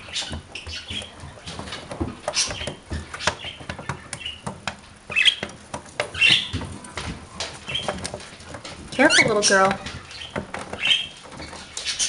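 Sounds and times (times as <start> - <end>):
bird chirps: 0.0 - 1.6, 2.3 - 6.6
claws and beaks tapping antlers: 0.0 - 12.0.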